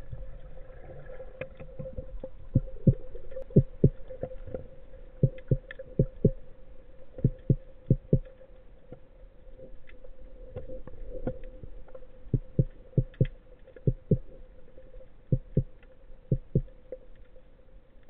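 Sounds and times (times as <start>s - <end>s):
steady underwater hum: 0.0s - 18.0s
dull low double thumps: 2.5s - 4.0s, 5.2s - 6.4s, 7.2s - 8.2s, 12.3s - 13.3s, 13.9s - 14.3s, 16.3s - 16.7s.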